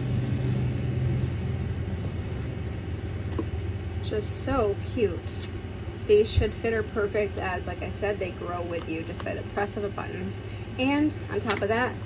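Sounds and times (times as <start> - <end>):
fabric bag rustling: 0.0 - 6.0
low rumble: 0.0 - 8.7.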